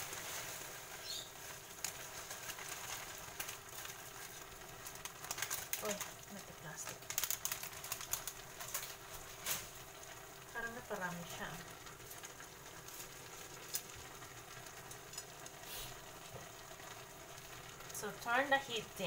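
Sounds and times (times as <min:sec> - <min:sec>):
plastic wrapper crinkling: 0:00.0 - 0:18.9
food cooking in a pan: 0:00.0 - 0:19.0.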